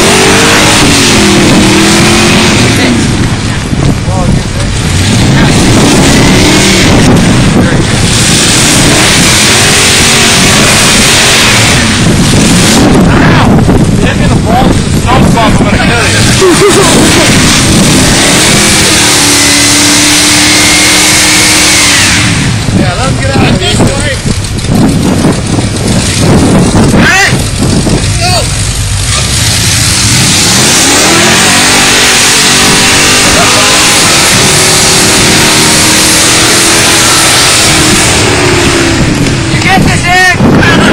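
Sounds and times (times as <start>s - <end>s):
truck engine revving: 0.0s - 40.9s
wheels spinning in wet snow: 0.0s - 40.9s.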